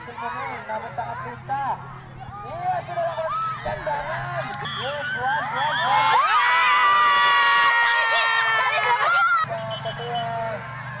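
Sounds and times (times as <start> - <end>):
crowd shouting: 2.2 - 11.0.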